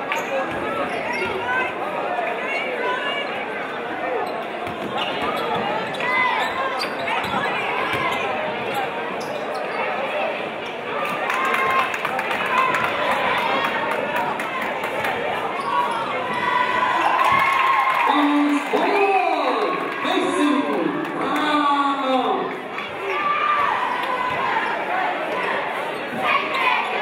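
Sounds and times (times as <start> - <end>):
crowd chatter echoing: 0.0 - 27.0.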